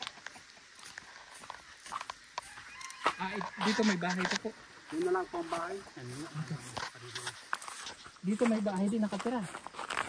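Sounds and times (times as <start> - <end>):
footsteps on dirt path: 0.0 - 10.0.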